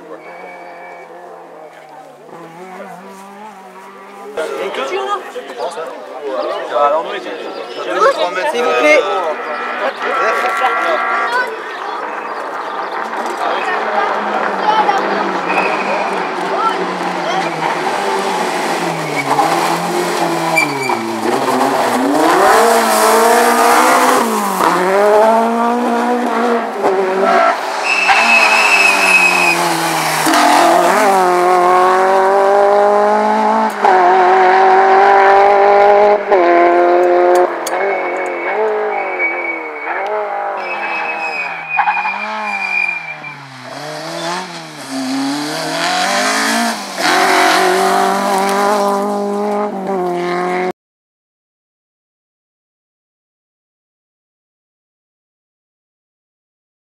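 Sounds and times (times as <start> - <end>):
rally car engine revving: 0.0 - 4.6, 8.6 - 50.7
tyres squealing: 20.4 - 25.4, 27.2 - 31.8, 37.7 - 48.4.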